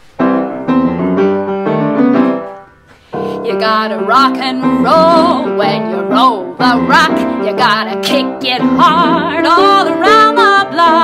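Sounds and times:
piano playing: 0:00.0 - 0:11.0.

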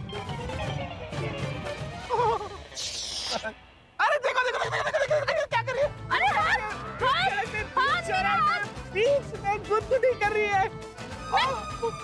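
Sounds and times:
high-pitched excited voices: 0:02.2 - 0:09.2.

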